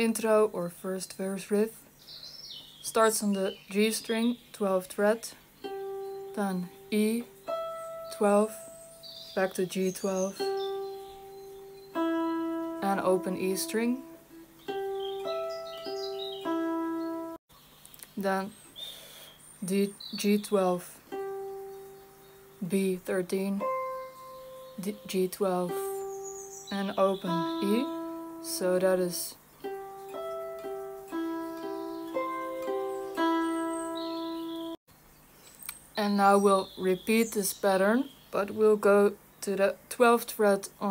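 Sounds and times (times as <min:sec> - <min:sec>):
electric guitar single notes: 0:05.8 - 0:17.4, 0:21.2 - 0:34.8
electric guitar picking a riff: 0:10.6 - 0:17.4.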